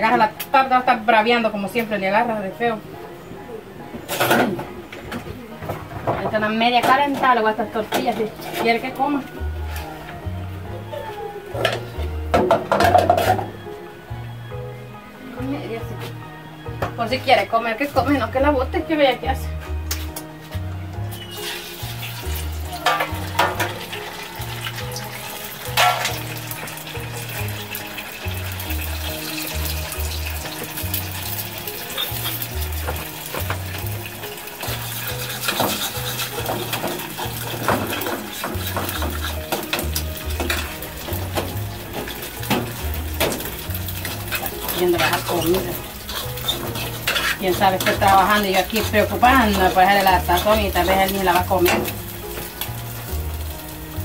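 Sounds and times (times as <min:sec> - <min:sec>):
metal utensil scraping pots: 0:04.0 - 0:04.7, 0:05.6 - 0:10.0, 0:11.6 - 0:13.5, 0:21.1 - 0:53.7
background music with bass line: 0:08.4 - 0:54.0
food sizzling in a pan: 0:21.0 - 0:54.0.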